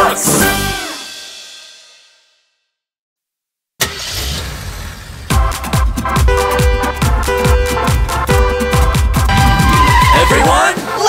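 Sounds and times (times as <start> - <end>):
cartoon car engine rumble: 3.8 - 6.0.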